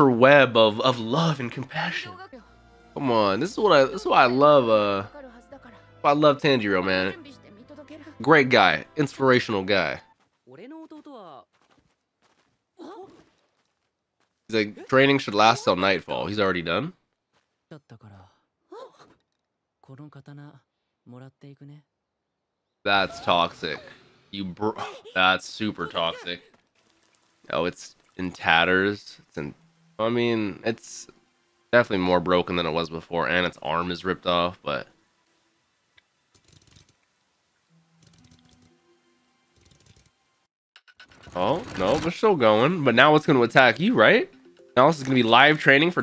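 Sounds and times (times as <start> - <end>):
clockwork gears clicking and ratcheting: 36.3 - 37.0, 39.6 - 40.2
quiet character dialogue: 41.2 - 46.0.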